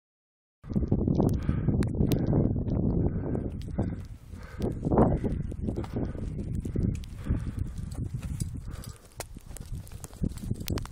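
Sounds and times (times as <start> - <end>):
wind buffeting microphone: 0.6 - 10.9.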